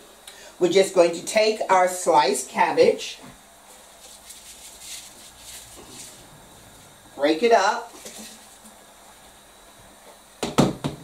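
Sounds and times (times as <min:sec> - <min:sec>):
knocks on chopping board: 0:10.4 - 0:11.0.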